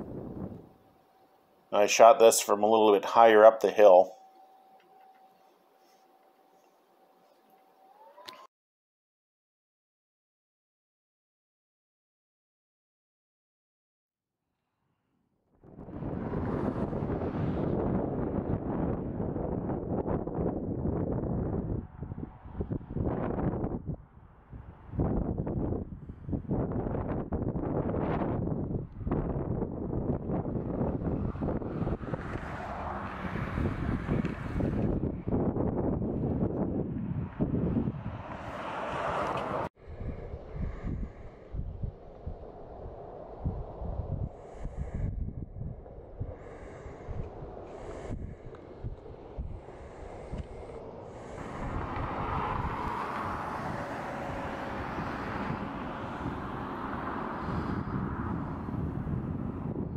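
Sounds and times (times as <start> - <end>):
wind buffeting microphone: 0.0 - 0.9, 15.6 - 59.9.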